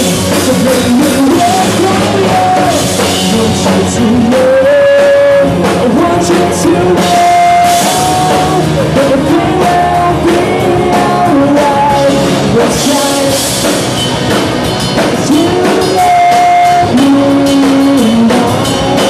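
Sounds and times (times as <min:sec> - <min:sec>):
live rock band playing: 0:00.0 - 0:19.0.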